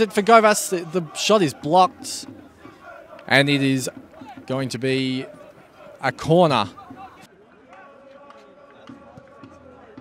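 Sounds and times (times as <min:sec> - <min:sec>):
distant voices of players: 0:00.0 - 0:10.0.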